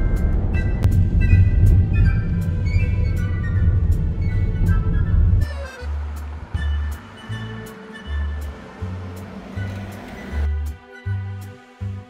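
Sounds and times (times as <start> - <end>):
car driving rumble: 0.0 - 10.8
background music: 0.0 - 12.0.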